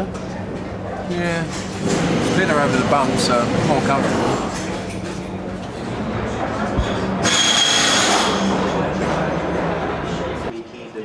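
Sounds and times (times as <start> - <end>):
background chatter: 0.0 - 11.0
low mechanical hum: 0.0 - 11.0.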